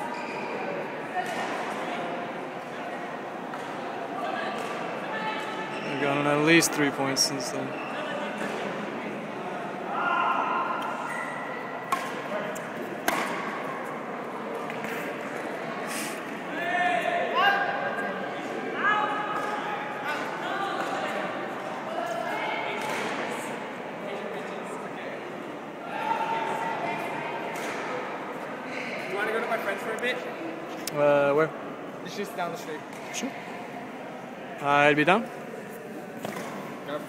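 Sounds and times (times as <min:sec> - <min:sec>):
indistinct voices in echoing hall: 0:00.0 - 0:37.0.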